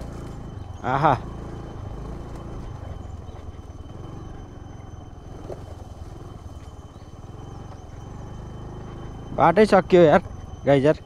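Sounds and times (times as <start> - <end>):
motor scooter engine running: 0.0 - 11.0.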